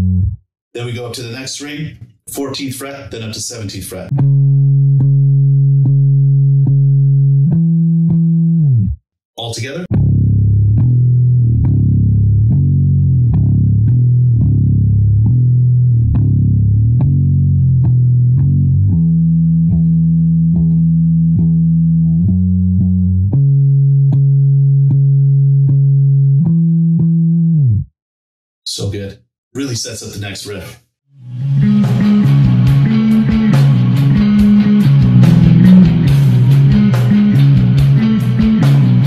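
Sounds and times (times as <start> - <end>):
bass guitar riff played with pick: 0.0 - 0.4, 4.1 - 9.0, 9.9 - 27.8, 31.2 - 39.0.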